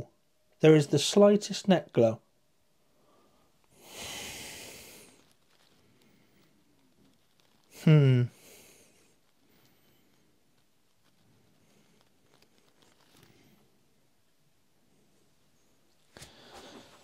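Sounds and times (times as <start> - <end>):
faint rustles: 2.9 - 17.0.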